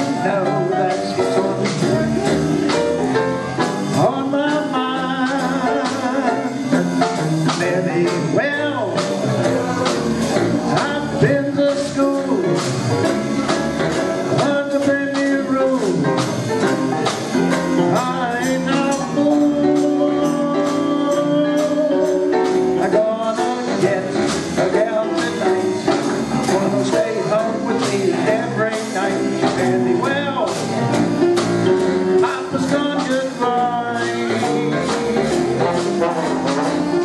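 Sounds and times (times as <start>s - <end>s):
jazz band playing live: 0.0s - 37.0s
low bass line: 0.0s - 37.0s.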